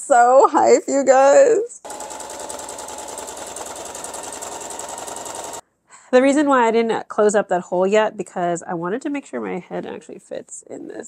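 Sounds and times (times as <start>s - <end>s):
sewing machine running: 1.8s - 5.6s.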